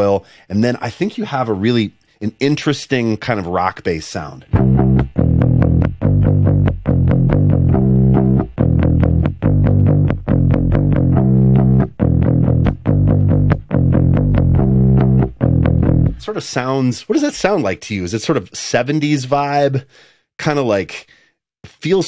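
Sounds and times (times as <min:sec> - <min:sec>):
overdriven bass guitar rock riff: 0:04.5 - 0:16.3.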